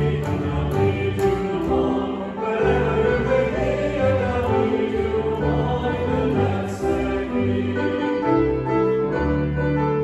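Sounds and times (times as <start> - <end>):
congregation singing a hymn: 0.0 - 9.6
double bass: 0.0 - 10.0
piano: 0.0 - 10.0.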